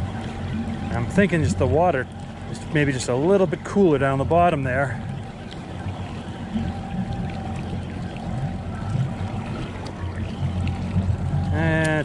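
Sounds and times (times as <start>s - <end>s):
wind and water rushing: 0.0s - 12.0s.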